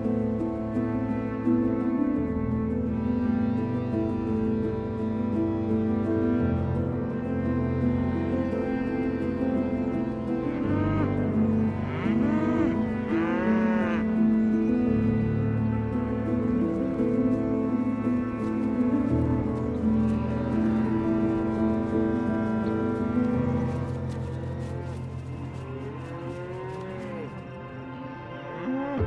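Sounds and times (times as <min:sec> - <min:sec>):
calm background music: 0:00.0 - 0:29.0
cows mooing: 0:10.4 - 0:15.2, 0:17.8 - 0:27.6.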